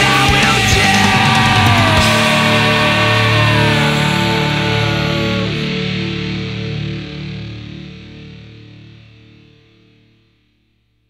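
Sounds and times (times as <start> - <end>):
distorted electric guitar chord: 0.0 - 9.6
bass guitar: 0.0 - 10.3.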